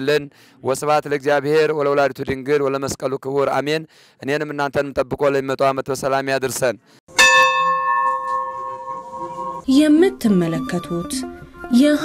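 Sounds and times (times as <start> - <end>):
church bell ringing: 7.1 - 9.7.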